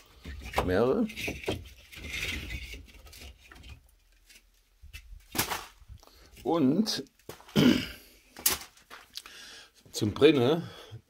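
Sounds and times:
wood scraping against wood: 0:00.0 - 0:07.6.

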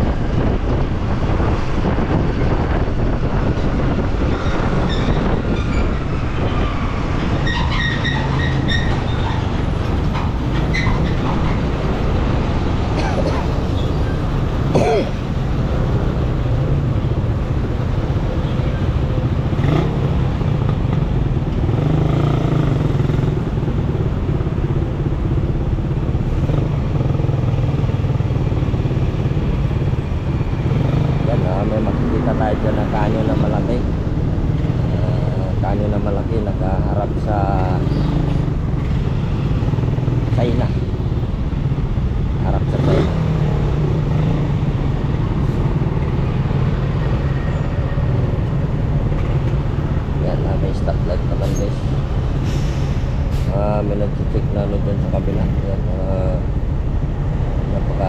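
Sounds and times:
tyre and road noise: 0:00.0 - 0:58.0.

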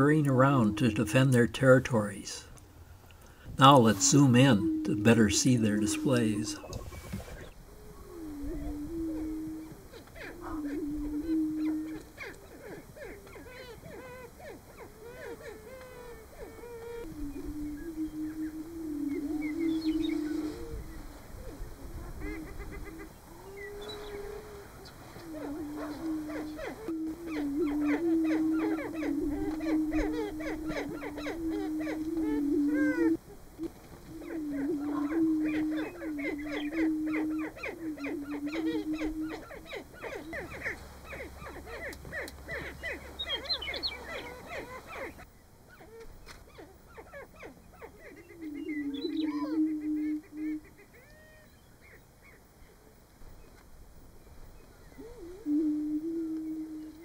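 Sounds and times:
sharp higher bird calls: 0:00.0 - 0:02.5, 0:03.6 - 0:21.6, 0:22.2 - 0:52.0
songbird singing: 0:00.0 - 0:57.0
low booming bird notes: 0:03.3 - 0:12.4, 0:14.8 - 0:45.1, 0:48.1 - 0:50.8.

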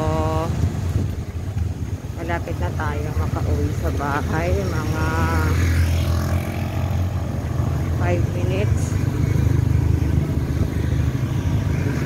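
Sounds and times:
cars and motorcycles passing: 0:00.0 - 0:12.0
low traffic rumble: 0:00.0 - 0:12.0.

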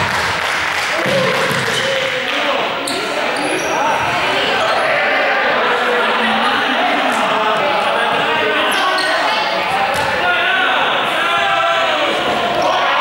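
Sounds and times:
young people calling and chattering: 0:00.9 - 0:13.0.

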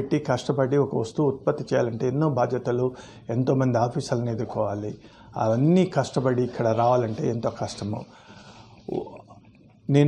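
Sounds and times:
man speaking: 0:00.0 - 0:08.2, 0:08.8 - 0:09.3
faint room hiss: 0:00.0 - 0:10.0.

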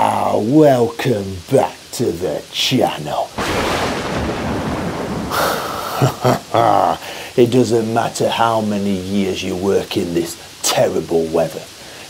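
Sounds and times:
steady rain: 0:00.0 - 0:12.0
rolling thunder: 0:03.4 - 0:06.5.

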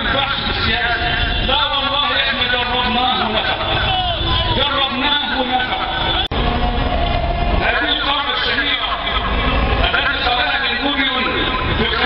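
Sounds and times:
man speaking over pa system: 0:00.0 - 0:06.3, 0:07.6 - 0:12.0.

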